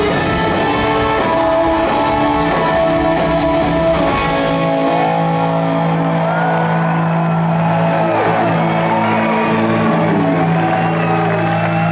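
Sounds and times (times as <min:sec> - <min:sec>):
electric guitars sustained chord: 0:00.0 - 0:11.6
crowd cheering and whooping: 0:03.6 - 0:11.9.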